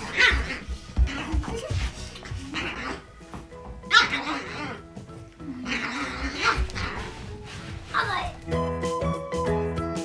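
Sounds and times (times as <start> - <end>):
puppy barking: 0.0 - 1.3, 3.9 - 4.8, 5.7 - 7.2
background music: 0.0 - 10.0.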